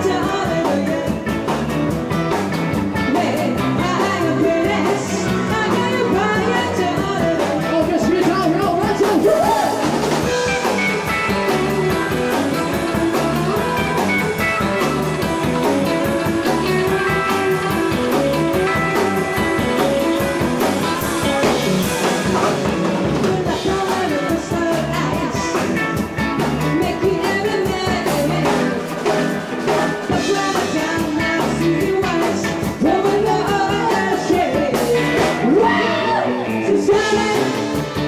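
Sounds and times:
woman singing into a microphone: 0.0s - 1.4s, 3.0s - 9.9s, 23.0s - 37.9s
rock band playing: 0.0s - 38.0s.

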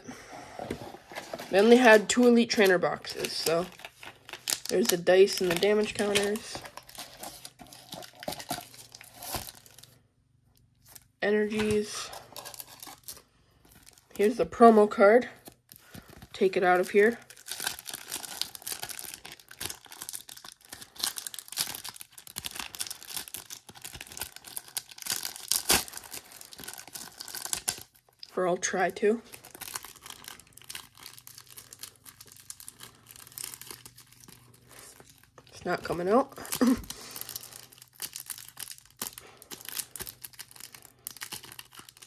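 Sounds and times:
cellophane wrapper crinkling: 0.8s - 14.4s, 15.4s - 28.3s, 29.3s - 42.0s.

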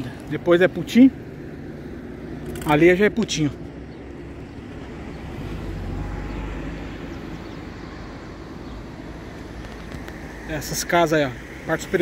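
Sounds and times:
low city rumble: 0.0s - 12.0s.

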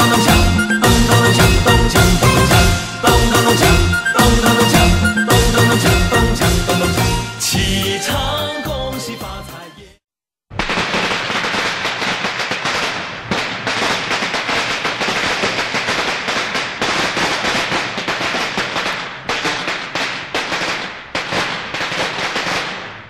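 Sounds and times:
firecrackers crackling: 0.0s - 7.2s, 10.5s - 23.0s.

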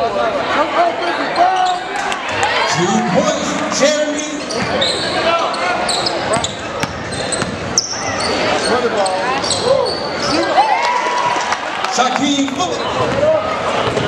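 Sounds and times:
voices of players and crowd: 0.0s - 14.0s
sneakers squeaking: 1.3s - 2.7s, 3.4s - 10.6s, 12.7s - 14.0s.

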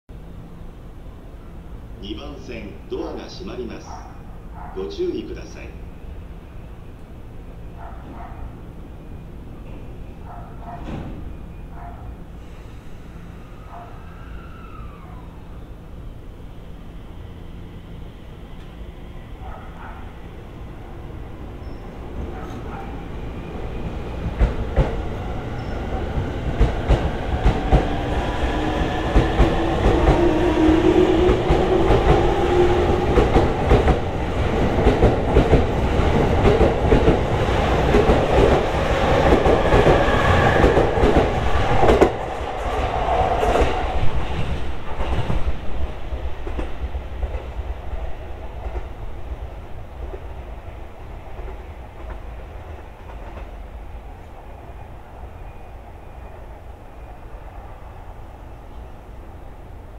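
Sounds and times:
train low rumble: 0.1s - 59.9s.

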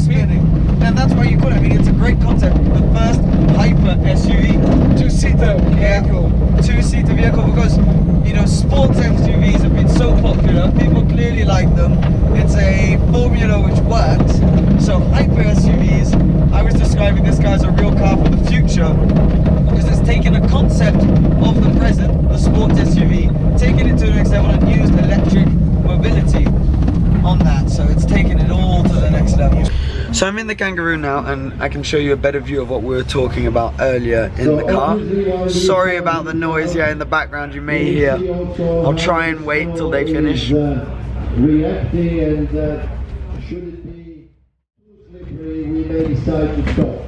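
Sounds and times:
car tyre and wind noise: 0.0s - 44.2s
faint voices talking: 31.5s - 43.1s.

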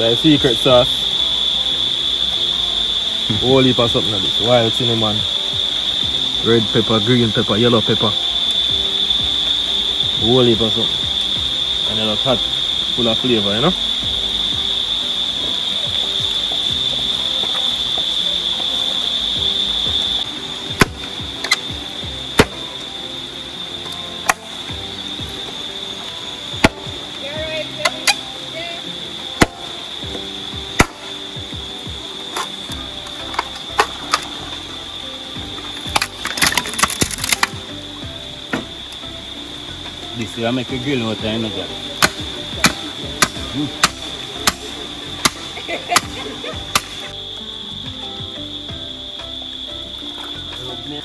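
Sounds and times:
knife chopping bamboo: 20.8s - 21.6s, 22.4s - 22.6s, 42.0s - 47.0s.

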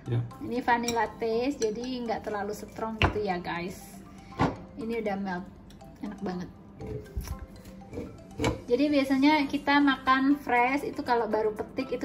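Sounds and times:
background music: 0.0s - 12.0s
woman speaking: 0.4s - 4.1s, 4.8s - 6.6s, 8.6s - 12.0s.

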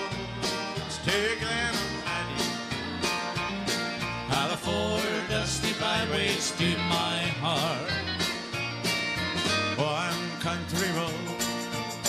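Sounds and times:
country band instrumental: 0.0s - 12.0s
electric guitar: 0.0s - 12.0s.

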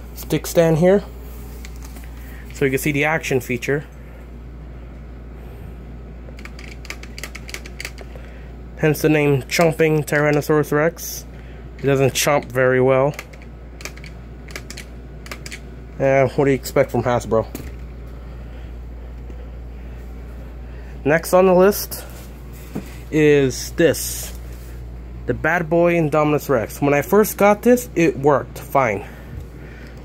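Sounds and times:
low steady hum: 0.0s - 30.0s.

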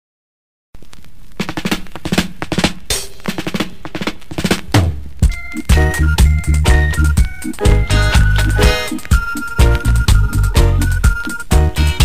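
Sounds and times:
snare drum fill: 1.4s - 12.0s
reggae music: 1.8s - 12.0s
bass: 5.3s - 12.0s.

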